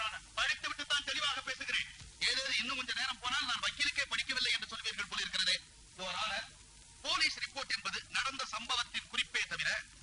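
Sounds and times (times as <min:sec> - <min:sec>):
man talking fast and loudly: 0:00.0 - 0:09.9.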